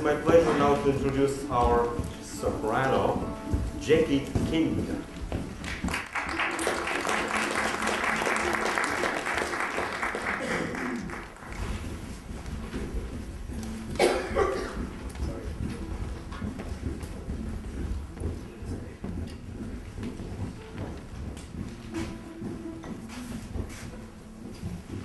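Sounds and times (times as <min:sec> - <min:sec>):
audience and players settling: 0:00.0 - 0:25.0.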